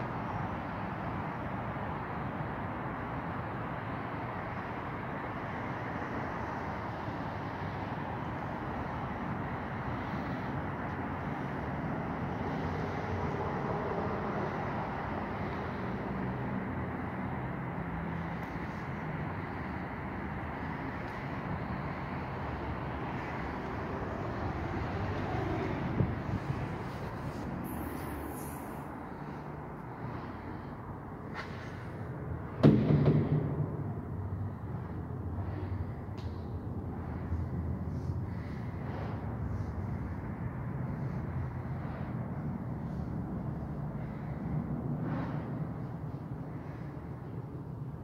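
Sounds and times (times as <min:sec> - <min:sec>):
road traffic hum: 0:00.0 - 0:48.0
sharp knock: 0:32.6 - 0:33.8.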